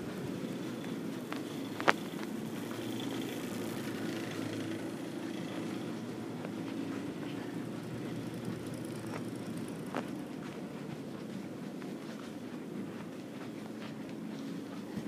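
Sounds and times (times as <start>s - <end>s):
light noisy wash: 0.0s - 15.0s
steady low hum: 0.0s - 15.0s.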